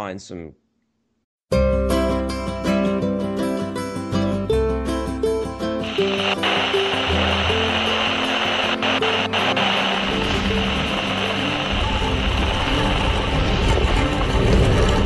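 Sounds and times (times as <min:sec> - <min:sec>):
music with sustained notes: 0:01.6 - 0:15.0
steady hissing wash: 0:05.8 - 0:14.0.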